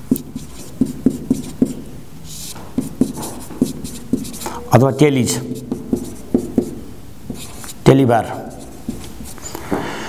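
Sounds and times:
pen scratching stroke: 0.1s - 4.6s, 5.5s - 7.8s, 8.4s - 9.5s
pen tapping while writing: 2.8s - 4.5s, 5.6s - 7.7s.

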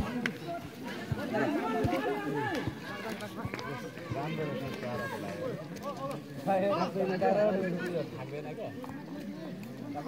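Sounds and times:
spectators calling and shouting: 0.0s - 10.0s.

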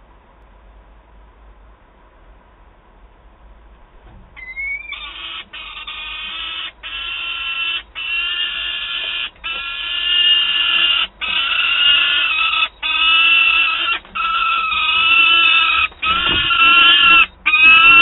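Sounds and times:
falcon wailing calls: 4.4s - 18.0s.

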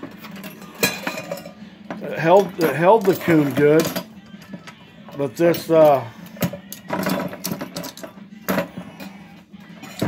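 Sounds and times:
clicks and knocks of trap parts: 5.6s - 8.8s.

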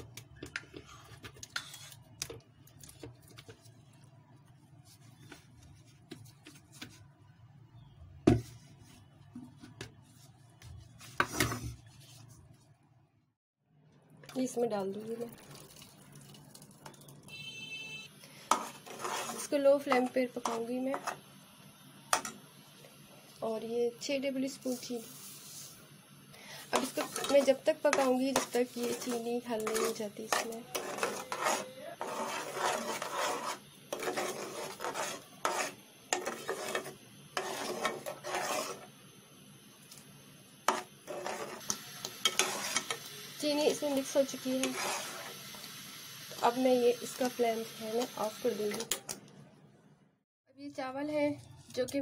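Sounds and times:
spoon scraping thick pulp in pot: 0.4s - 3.8s, 18.4s - 21.2s, 26.6s - 39.0s, 40.6s - 43.0s, 44.0s - 45.4s
faint high ringing tone: 17.3s - 18.2s, 30.6s - 32.0s.

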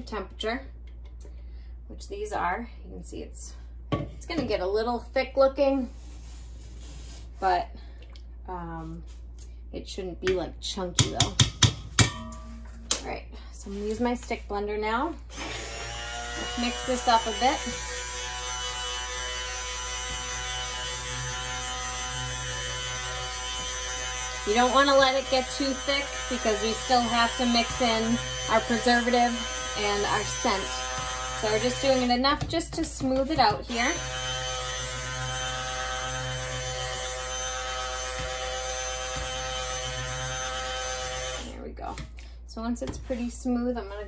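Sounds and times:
stick blender motor hum: 15.3s - 32.2s, 33.5s - 41.5s.

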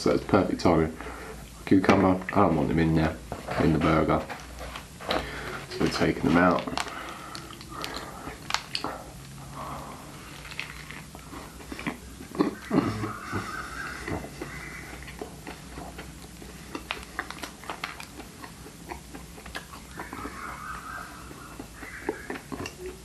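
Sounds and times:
chewing and mouth sounds: 5.6s - 23.0s
food wrapper crinkles and clicks: 5.8s - 9.4s, 10.2s - 12.0s, 15.0s - 18.5s.

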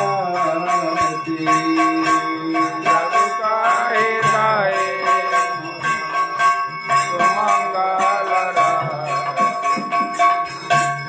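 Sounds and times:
devotional music: 0.0s - 11.0s
temple bells ringing: 0.0s - 11.0s.

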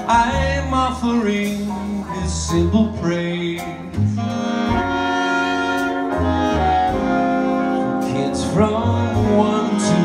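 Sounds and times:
low bass notes: 0.0s - 10.0s
big band horn section: 3.9s - 10.0s.

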